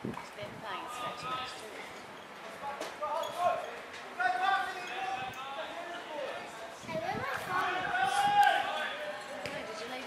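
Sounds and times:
people shouting outdoors: 3.2 - 9.4.

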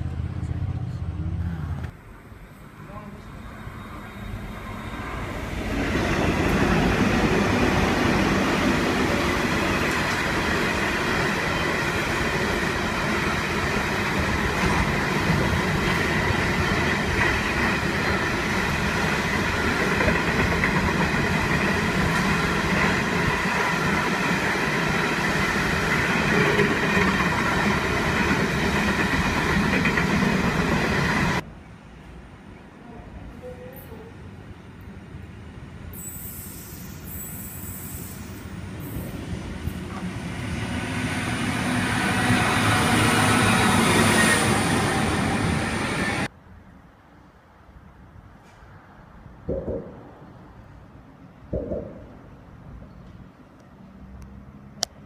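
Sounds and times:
train wheels rumbling on rail: 3.4 - 31.5, 36.8 - 46.3.

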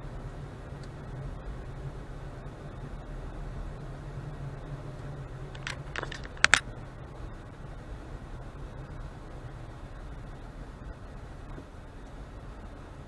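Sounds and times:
car engine hum: 0.0 - 13.0
road noise: 0.0 - 13.0
sharp clicks and rattles: 5.5 - 6.6.

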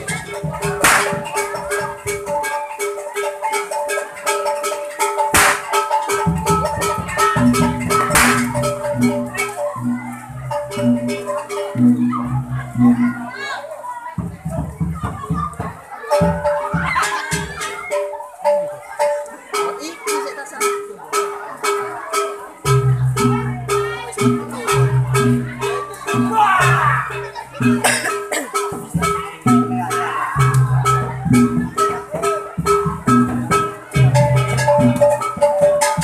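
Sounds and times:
low drum beat: 0.0 - 2.6, 5.2 - 13.6, 14.2 - 20.8, 22.6 - 36.0
gong and metallophone notes: 0.0 - 13.4, 16.1 - 36.0
sharp percussive strikes: 0.0 - 13.5, 14.2 - 36.0
children shouting and chattering: 0.0 - 36.0.

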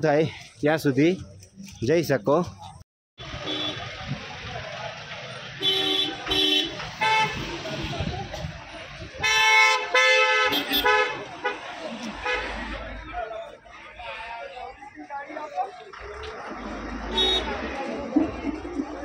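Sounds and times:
street traffic: 0.0 - 19.0
vehicle horns honking: 3.2 - 4.0, 5.6 - 8.2, 9.2 - 12.9, 17.0 - 17.9.

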